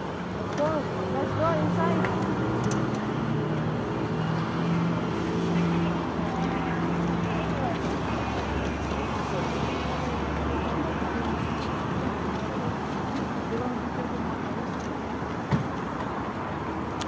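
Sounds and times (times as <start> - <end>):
people's voices: 0.0 - 15.8
cars and buses going by: 0.0 - 17.0.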